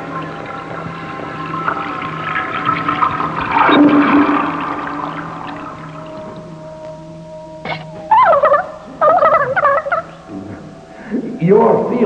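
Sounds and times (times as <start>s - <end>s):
high wavering vocal warble: 7.6s - 10.8s.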